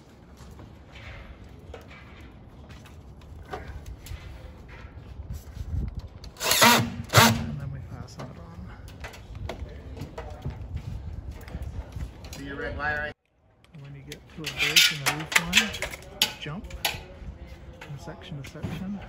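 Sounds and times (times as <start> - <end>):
cordless drill driving screws: 6.4 - 7.4.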